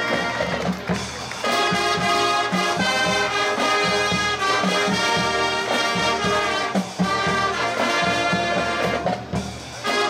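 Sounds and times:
brass chords: 0.0 - 10.0.

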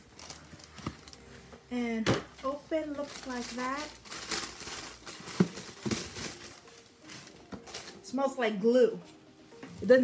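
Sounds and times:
tissue paper rustling: 0.0 - 1.5, 2.4 - 8.2.

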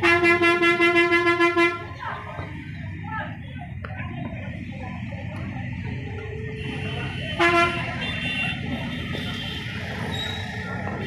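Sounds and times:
street traffic noise: 0.0 - 11.0
vehicle horn toot: 6.6 - 10.4.

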